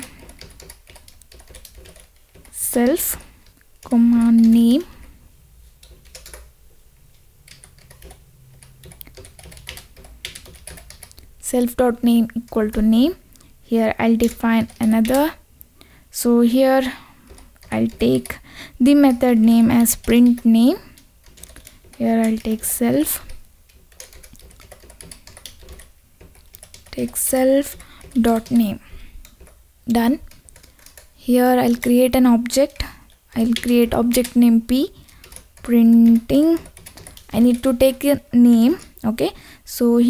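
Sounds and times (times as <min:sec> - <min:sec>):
keyboard typing clicks: 0:00.0 - 0:02.6, 0:05.8 - 0:06.5, 0:07.5 - 0:11.3, 0:14.1 - 0:15.3, 0:17.3 - 0:29.6, 0:30.2 - 0:31.1, 0:31.7 - 0:38.0.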